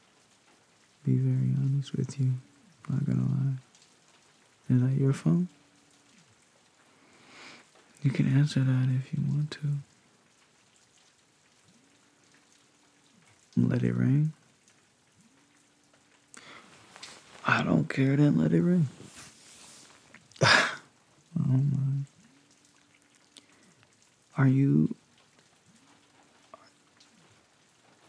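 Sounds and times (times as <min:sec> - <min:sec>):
faint rain hiss: 0:00.0 - 0:28.0.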